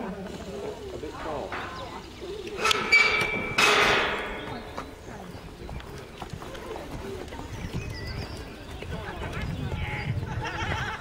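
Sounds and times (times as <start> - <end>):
muffled hoofbeats: 3.0 - 11.0.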